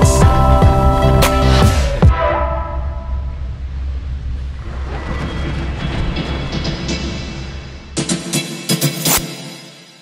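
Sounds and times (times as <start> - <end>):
chairlift low rumble: 2.7 - 8.0.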